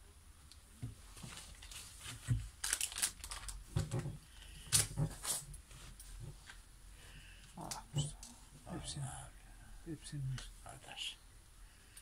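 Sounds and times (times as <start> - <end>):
rustling and crinkling handling noise: 0.7 - 9.0.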